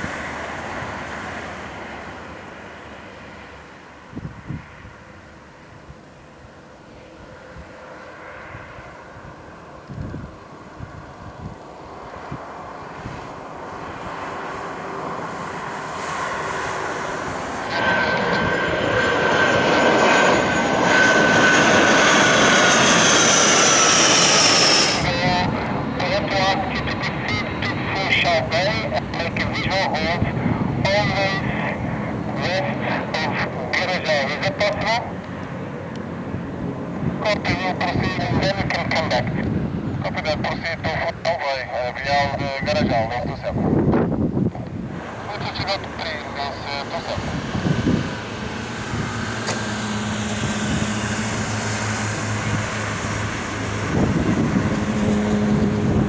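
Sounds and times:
high turbine whine: 0.0 - 56.0
jet engines passing overhead: 0.0 - 56.0.

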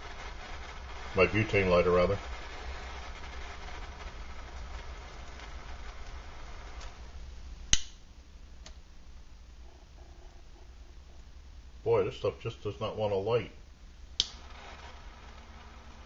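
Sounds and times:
lighter hissing: 0.0 - 8.0, 14.1 - 16.0
lighter click: 7.7 - 8.0, 14.2 - 14.4.

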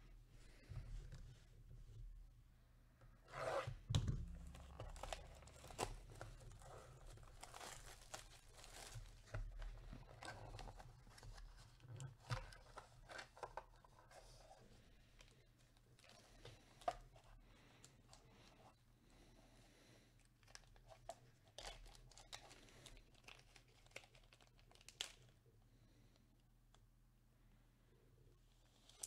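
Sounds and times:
plastic wrapper rustling: 4.2 - 14.6, 20.4 - 25.4.

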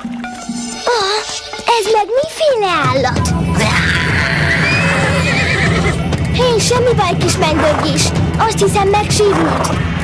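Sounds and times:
background music: 0.0 - 10.0
pony whinnying: 3.6 - 6.1.

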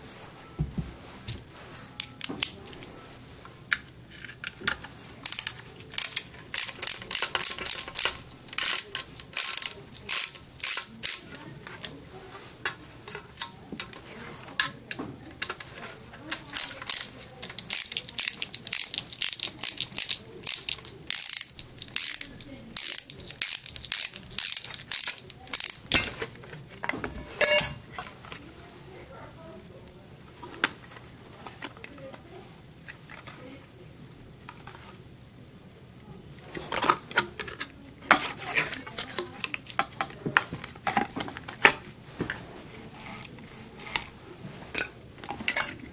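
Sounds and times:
screwdriver ratchet clicks: 5.3 - 11.2, 16.6 - 25.9.

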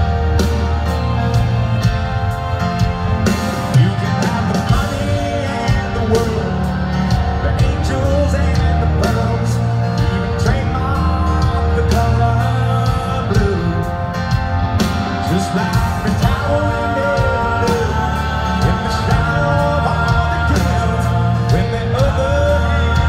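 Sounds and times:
live rock band playing: 0.0 - 23.0
person singing lead vocal: 2.4 - 23.0.

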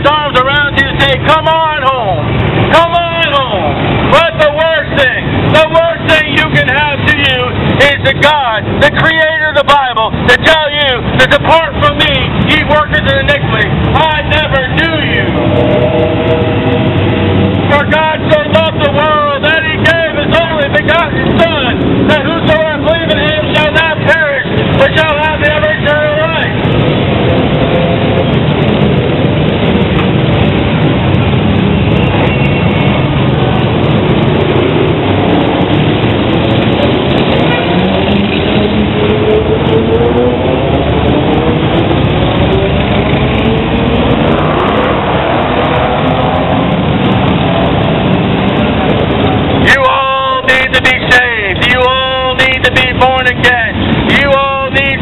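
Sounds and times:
motorcycles and cars passing: 0.0 - 55.0
long climbing engine note: 15.1 - 18.8.

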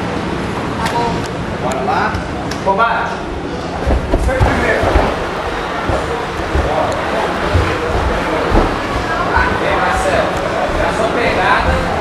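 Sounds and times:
low thumps: 3.8 - 12.0.

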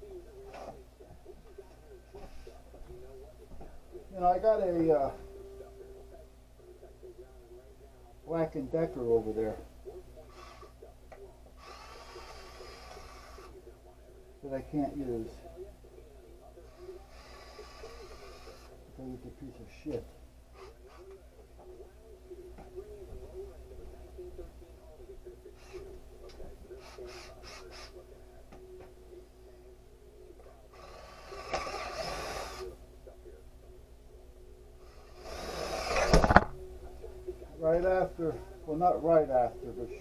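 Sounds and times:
cordless drill whining into wood: 31.2 - 32.6.

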